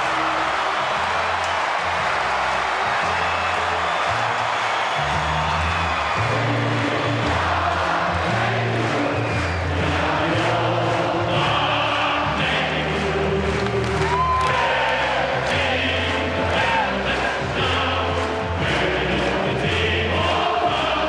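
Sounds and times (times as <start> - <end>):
stadium crowd cheering and singing: 0.0 - 21.0
music with stepping bass line: 6.2 - 21.0.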